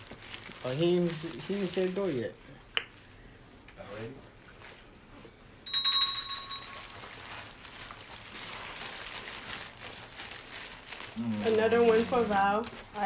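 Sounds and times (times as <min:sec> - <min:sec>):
paper wrappers crinkling: 0:00.0 - 0:02.4, 0:05.7 - 0:13.0
bell-like ding: 0:05.7 - 0:07.0.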